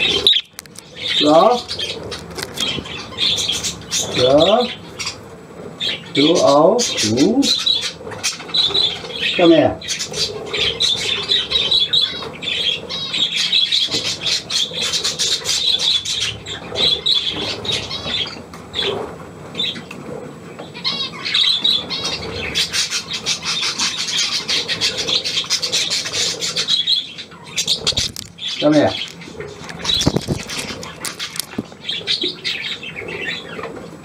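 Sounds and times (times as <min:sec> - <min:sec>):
budgerigars chattering: 0:00.0 - 0:05.2, 0:05.8 - 0:19.0, 0:20.8 - 0:33.7
bird squawks and clicks: 0:00.2 - 0:00.9.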